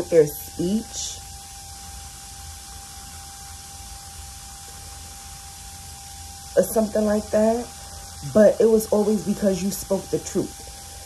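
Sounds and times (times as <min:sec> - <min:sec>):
faint thin whine: 0:00.0 - 0:11.0
low hum: 0:00.0 - 0:11.0
steady hiss: 0:00.0 - 0:11.0.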